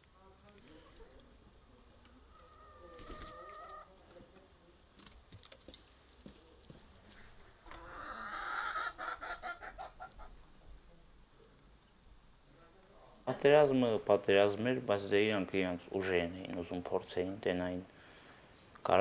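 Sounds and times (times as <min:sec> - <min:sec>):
chickens clucking: 0:00.8 - 0:04.4, 0:07.1 - 0:12.0.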